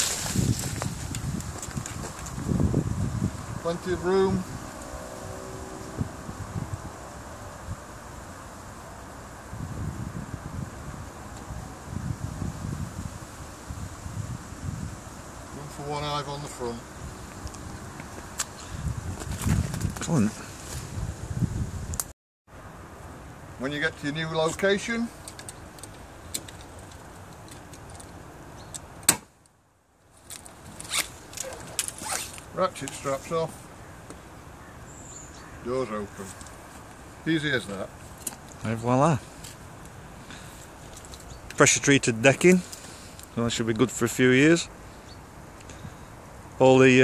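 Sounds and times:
wind on microphone: 0.0 - 15.6, 16.8 - 22.1.

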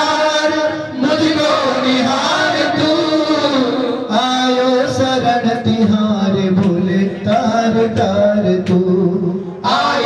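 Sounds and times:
men chanting through microphones: 0.0 - 10.0.

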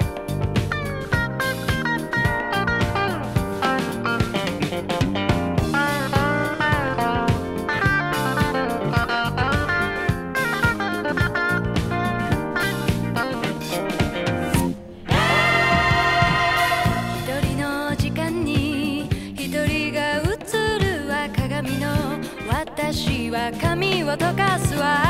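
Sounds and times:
guitar-led pop instrumental: 0.0 - 25.0.

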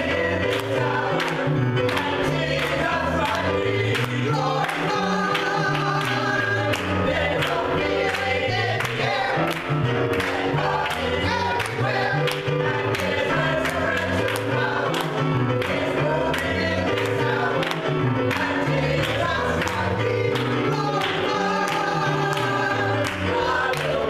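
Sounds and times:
gospel choir singing: 0.0 - 24.0
keyboard: 0.0 - 24.0.

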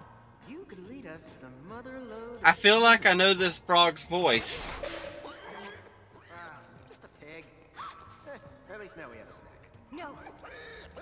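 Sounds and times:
background music: 0.0 - 11.0
cartoon dialogue: 2.5 - 4.8.

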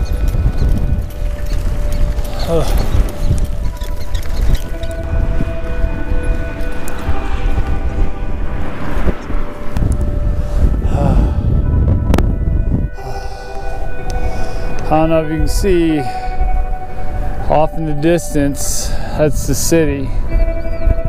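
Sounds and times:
tyres on gravel: 0.0 - 7.2
wind buffeting microphone: 0.0 - 21.0.

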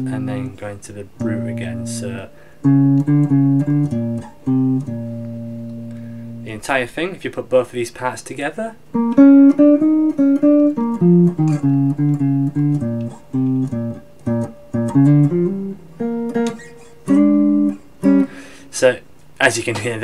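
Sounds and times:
electric guitar jazz blues line: 0.0 - 6.5, 8.8 - 18.7.

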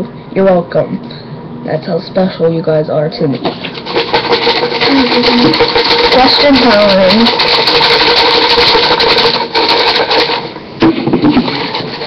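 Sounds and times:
paper slips rattling in plastic cup: 3.6 - 12.0.

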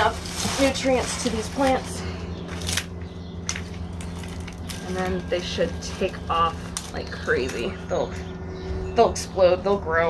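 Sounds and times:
hands rustling potting soil: 0.0 - 2.8
steady low hum: 0.0 - 10.0.

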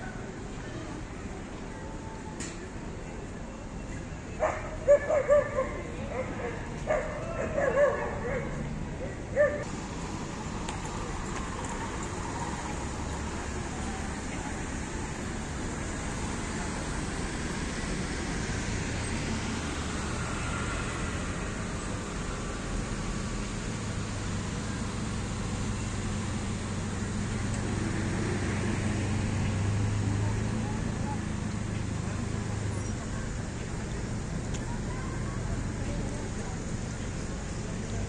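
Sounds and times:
street traffic hum: 0.0 - 38.0.

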